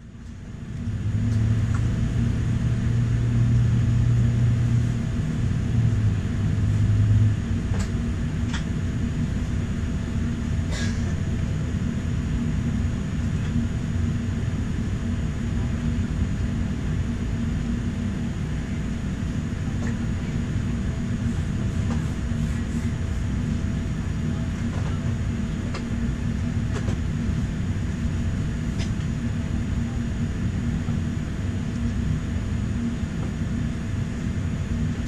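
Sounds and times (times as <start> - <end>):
airliner cabin rumble and hum: 0.0 - 35.0
deep drone: 0.0 - 35.0.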